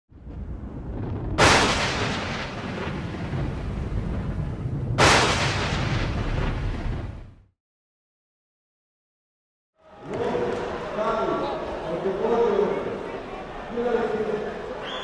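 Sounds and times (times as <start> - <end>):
low rumble: 0.1 - 7.5
boom impact hits: 0.2 - 7.4.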